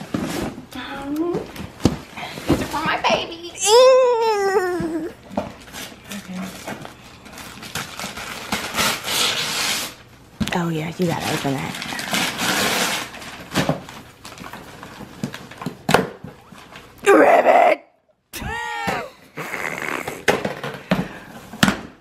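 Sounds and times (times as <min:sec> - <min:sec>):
person exclaiming: 0:03.6 - 0:05.1, 0:17.0 - 0:20.3.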